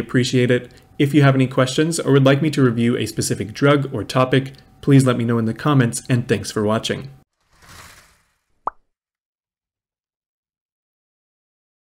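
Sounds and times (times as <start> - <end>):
soft whoosh: 7.4 - 8.5.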